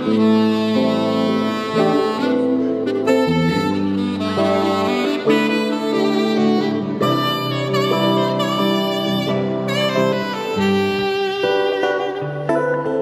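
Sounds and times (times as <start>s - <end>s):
saxophone playing jazz melody: 0.0s - 13.0s.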